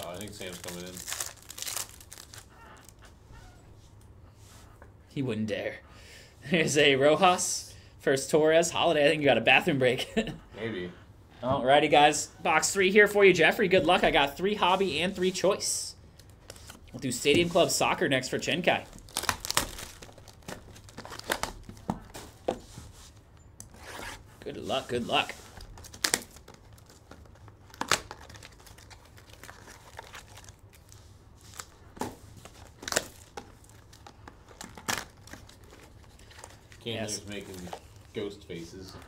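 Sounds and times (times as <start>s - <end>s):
plastic wrap tearing and crackling: 0.0s - 3.0s, 18.8s - 21.9s, 25.6s - 38.2s
cardboard tearing: 19.0s - 21.8s.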